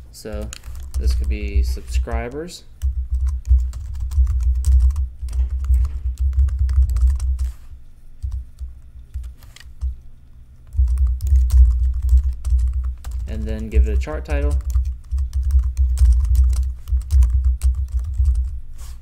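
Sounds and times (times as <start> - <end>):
computer keyboard typing: 0.3 - 7.6, 8.2 - 9.9, 10.6 - 18.6.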